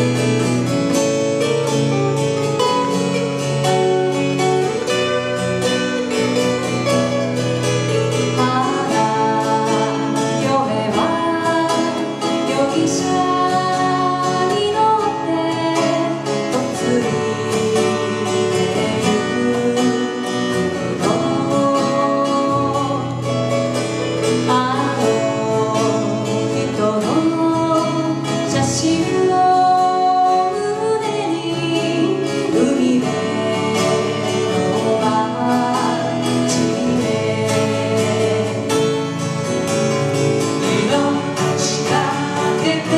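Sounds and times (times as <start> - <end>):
acoustic guitars: 0.0 - 42.9
person singing: 1.0 - 39.2, 39.9 - 42.9.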